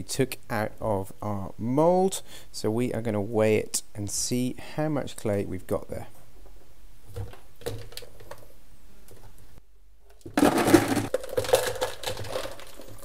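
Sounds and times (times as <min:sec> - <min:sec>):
clay pieces clattering into jug: 0:10.1 - 0:13.0.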